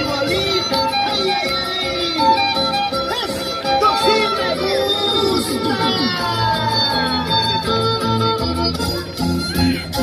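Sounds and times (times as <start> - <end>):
folk music with violin melody: 0.0 - 10.0.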